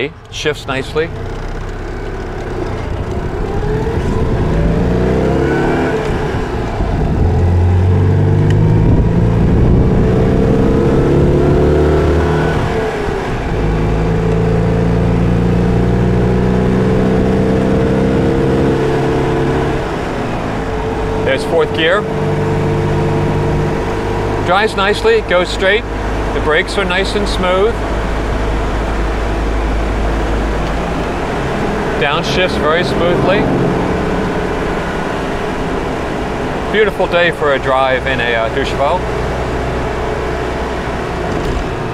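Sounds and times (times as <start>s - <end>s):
car engine accelerating: 0.0s - 41.9s
wind noise: 2.8s - 11.7s.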